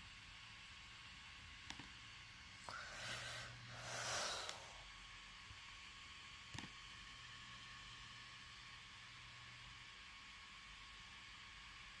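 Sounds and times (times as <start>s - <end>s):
faint hiss: 1.9s - 5.4s.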